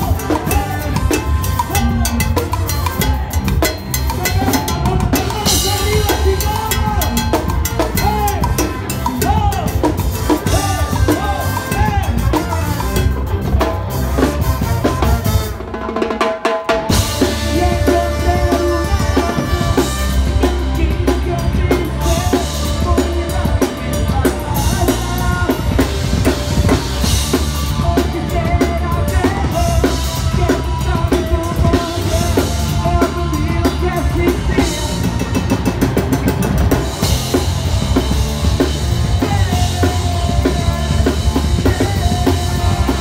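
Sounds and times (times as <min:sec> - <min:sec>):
bass guitar: 0:00.0 - 0:43.0
drum kit: 0:00.0 - 0:43.0
ska band playing: 0:00.0 - 0:43.0
trombone: 0:04.0 - 0:16.0, 0:16.9 - 0:33.3, 0:36.9 - 0:43.0
electric guitar: 0:16.7 - 0:43.0.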